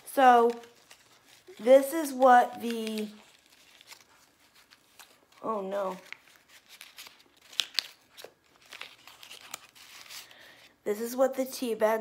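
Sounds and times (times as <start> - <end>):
foil packet crinkling and tearing: 0.0 - 10.8.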